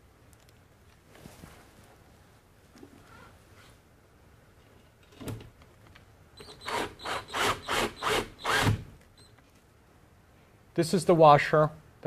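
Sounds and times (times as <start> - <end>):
drill driving screw into metal: 6.4 - 8.9.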